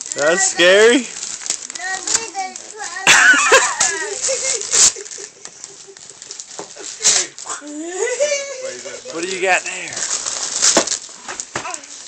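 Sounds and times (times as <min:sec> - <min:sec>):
wrapping paper rustling: 0:00.0 - 0:12.0.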